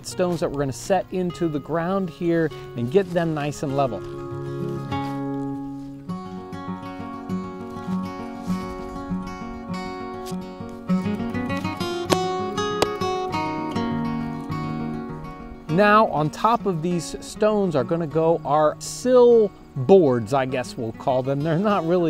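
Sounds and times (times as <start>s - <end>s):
plucked acoustic guitar music: 0.0s - 22.0s
sharp knocks: 12.1s - 13.1s.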